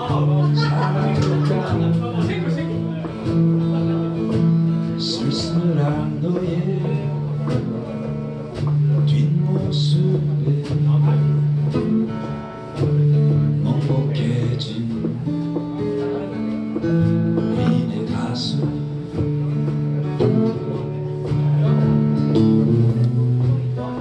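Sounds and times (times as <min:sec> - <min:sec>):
amplified acoustic guitar: 0:00.0 - 0:24.0
drum kit: 0:00.0 - 0:24.0.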